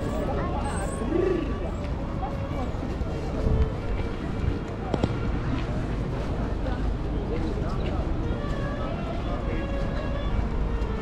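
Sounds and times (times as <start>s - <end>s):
chatter of passers-by: 0.0s - 11.0s
low street rumble: 0.0s - 11.0s.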